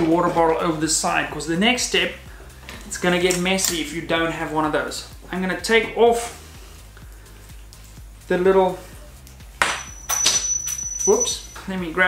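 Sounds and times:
thin high metal ping: 9.6 - 11.6.

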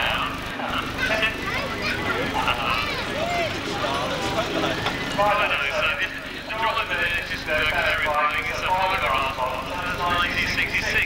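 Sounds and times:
people talking: 0.0 - 11.0
vehicle engine idling: 0.0 - 11.0.

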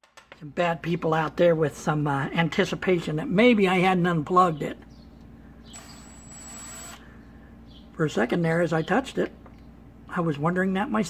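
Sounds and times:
cordless drill whine: 5.7 - 7.1.

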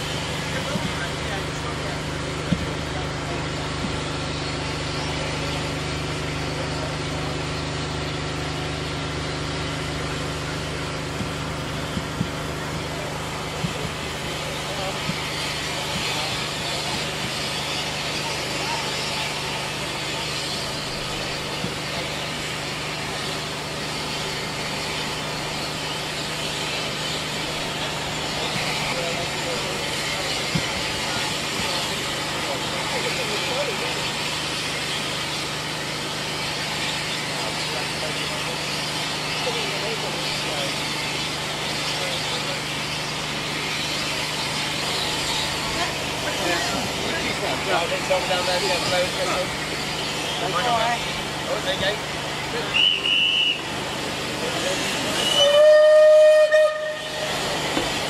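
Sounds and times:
steam locomotive hissing: 0.0 - 58.0.

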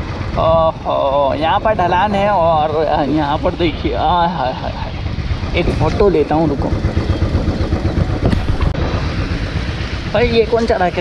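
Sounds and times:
motorcycle engine running: 0.0 - 11.0
wind buffeting microphone: 0.0 - 11.0.

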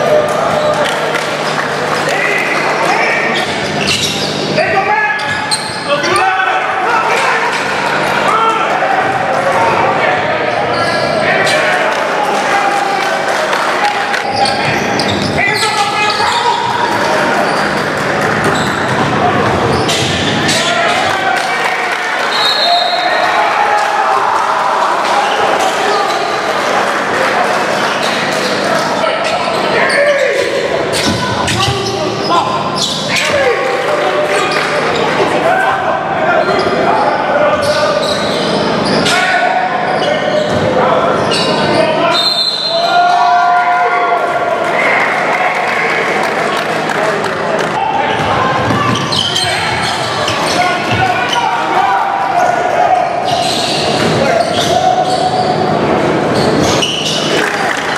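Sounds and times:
people shouting and chatting: 0.0 - 57.9
players and spectators calling out: 0.0 - 57.9.

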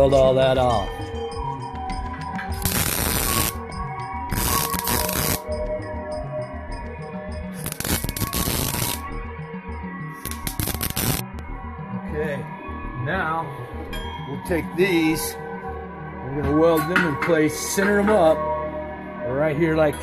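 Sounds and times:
background music: 0.0 - 20.0
arc welding crackling: 2.6 - 3.6, 4.3 - 5.5, 7.6 - 9.1, 10.2 - 11.4.

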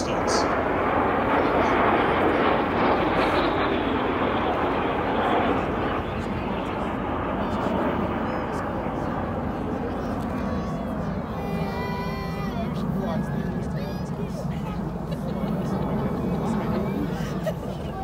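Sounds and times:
aircraft flying overhead: 0.0 - 18.0.

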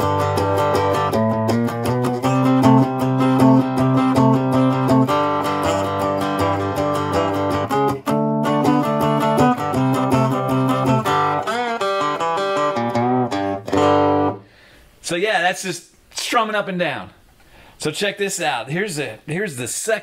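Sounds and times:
strummed cigar box guitar blues: 0.0 - 14.5.

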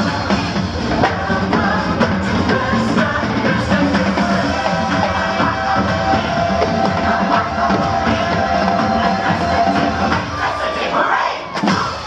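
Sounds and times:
crowd cheering: 0.0 - 12.0
parade music: 0.0 - 12.0
voices shouting: 4.7 - 12.0.

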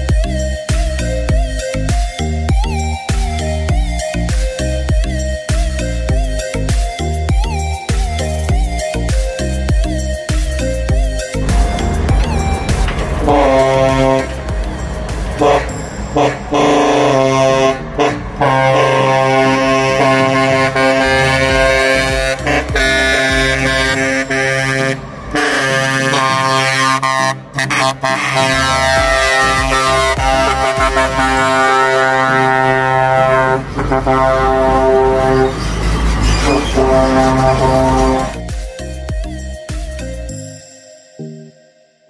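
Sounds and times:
truck engines running: 0.0 - 40.4
truck air horn blasts: 11.4 - 38.5.

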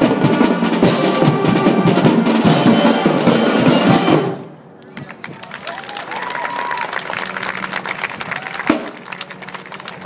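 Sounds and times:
audience applauding: 4.9 - 10.0
audience cheering: 5.2 - 10.0
held whoop: 5.6 - 7.0, 8.2 - 8.8.

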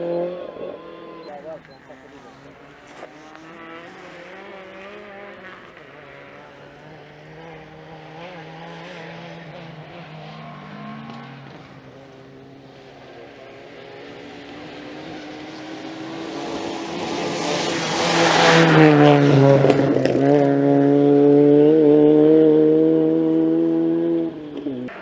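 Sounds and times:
rally car engine revving: 0.0 - 25.0.

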